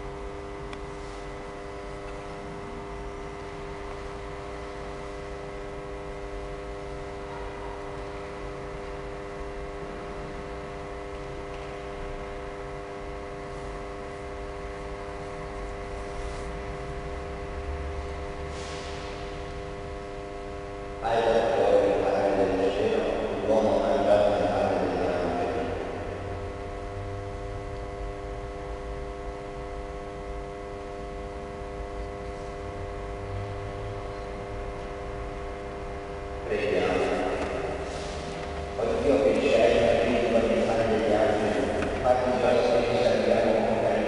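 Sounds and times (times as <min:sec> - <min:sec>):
hum of held tones: 0:00.0 - 0:44.0
man's voice: 0:21.0 - 0:25.8, 0:36.5 - 0:37.6, 0:38.8 - 0:44.0.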